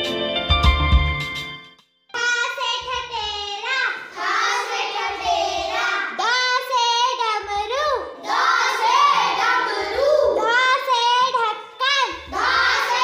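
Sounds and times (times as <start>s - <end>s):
child singing: 2.2s - 13.0s.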